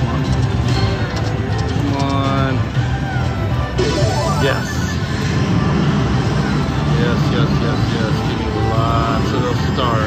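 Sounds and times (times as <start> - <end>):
slot machine low rumble: 0.0 - 10.0.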